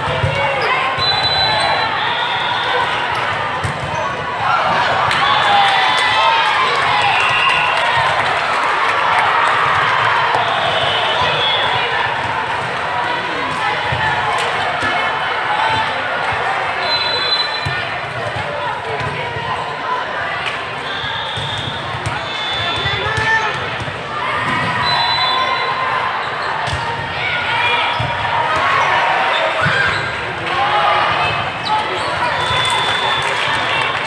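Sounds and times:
volleyballs hit and bouncing: 0:00.0 - 0:01.0, 0:02.7 - 0:16.8, 0:17.6 - 0:19.7
babble of voices in hall: 0:00.0 - 0:34.0.

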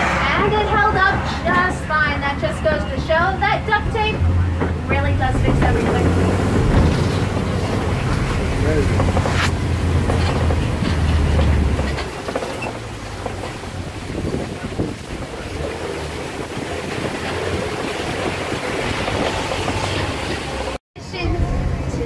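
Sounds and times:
road noise: 0:00.0 - 0:22.0
truck engine rumbling: 0:00.0 - 0:22.0.

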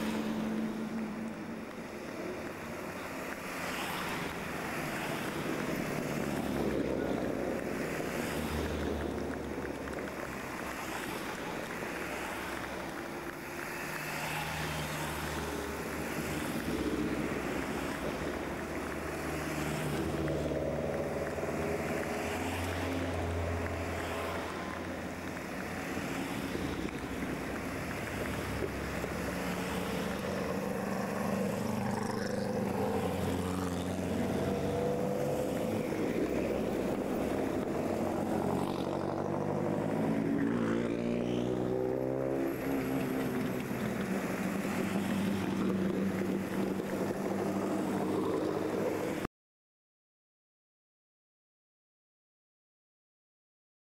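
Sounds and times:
cars driving past: 0:00.0 - 0:49.3.

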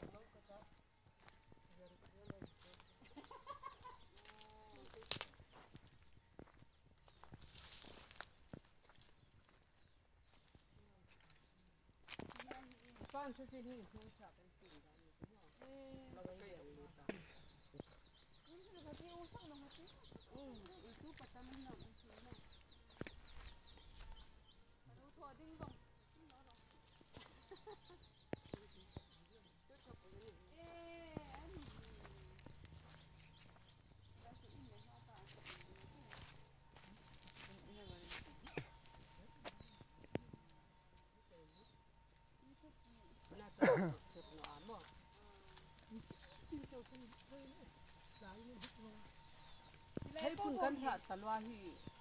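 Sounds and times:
chicken clucking: 0:03.0 - 0:04.3.

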